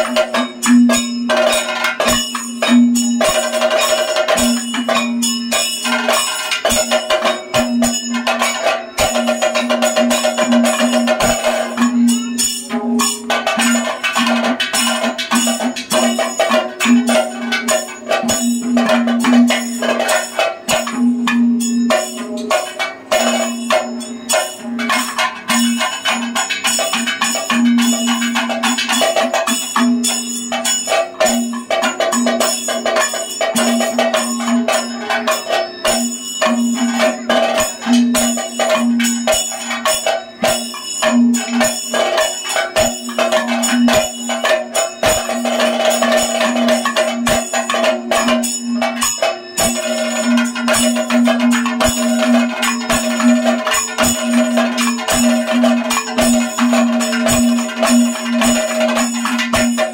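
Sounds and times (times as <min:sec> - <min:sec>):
metallic ringing tones: 0:00.0 - 0:59.9
rapid drum strokes: 0:00.0 - 0:59.9.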